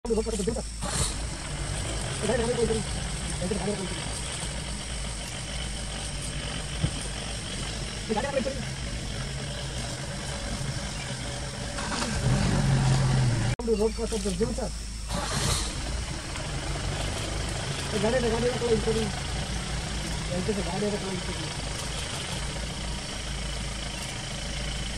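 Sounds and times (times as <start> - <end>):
vehicle engine idling: 0.0 - 24.9.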